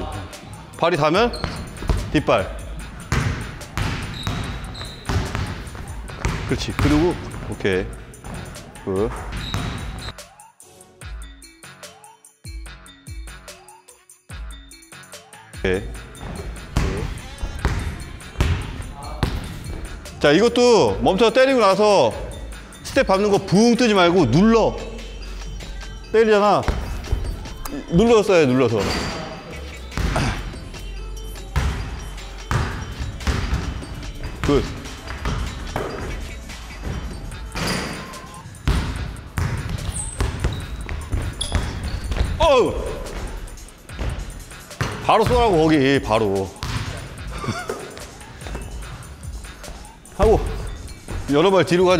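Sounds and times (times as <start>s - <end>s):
background music: 0.0s - 51.9s
basketball bouncing on hardwood floor: 1.4s - 2.1s, 3.1s - 7.1s, 9.1s - 10.0s, 32.5s - 36.2s, 38.6s - 42.4s, 46.6s - 47.0s.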